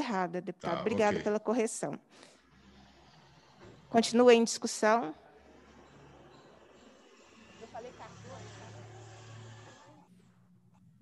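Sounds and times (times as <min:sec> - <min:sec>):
faint speech: 0:00.6 - 0:01.2
electrical hum and hiss: 0:00.6 - 0:01.3.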